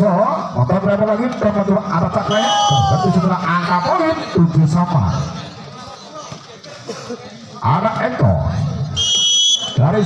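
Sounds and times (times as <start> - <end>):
man commentating: 0.0 - 5.4
crowd chatter: 0.0 - 10.0.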